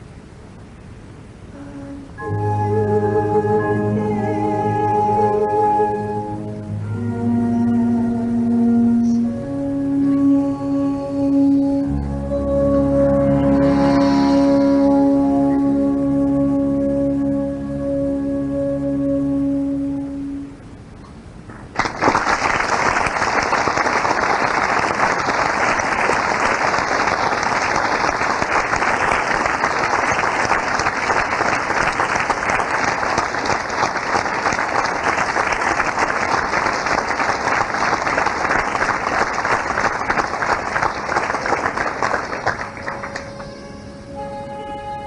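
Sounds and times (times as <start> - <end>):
orchestral music with held notes: 1.6 - 20.7, 42.1 - 45.0
audience applauding: 21.7 - 43.6.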